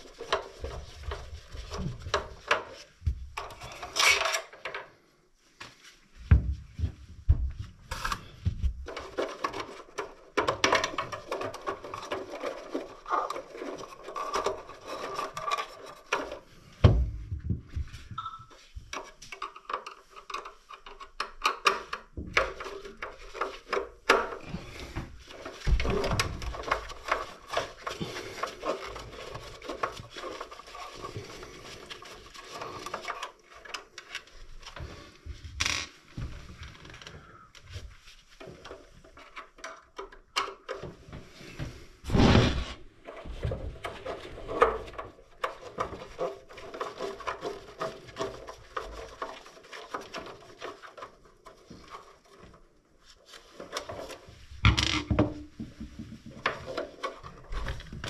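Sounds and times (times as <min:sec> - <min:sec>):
clicks and rattles of plastic parts: 0:00.0 - 0:05.0, 0:07.9 - 0:17.5, 0:18.5 - 0:36.0, 0:38.4 - 0:41.4, 0:43.0 - 0:52.8, 0:53.5 - 0:58.0
hands rubbing and scraping wiring: 0:00.0 - 0:58.0
rubbing noise: 0:42.0 - 0:43.4.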